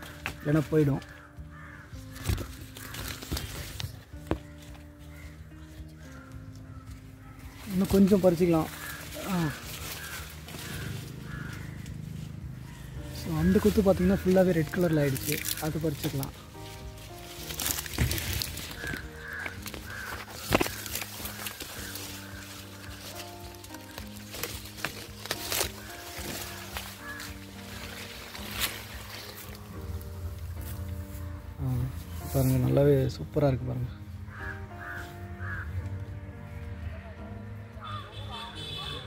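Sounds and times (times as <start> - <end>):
crow cawing: 0.0 - 32.2, 33.8 - 39.0
background music with sustained notes: 0.0 - 39.0.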